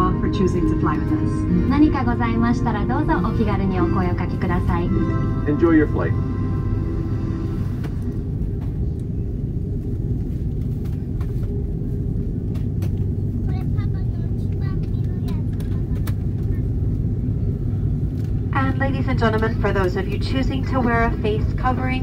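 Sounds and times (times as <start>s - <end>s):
jet cabin rumble and hum: 0.0s - 22.0s.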